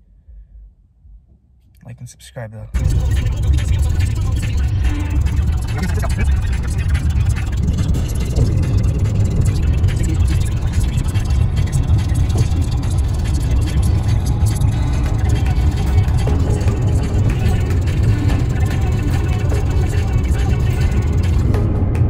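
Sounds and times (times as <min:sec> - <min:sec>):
car interior road noise: 0:01.8 - 0:22.0.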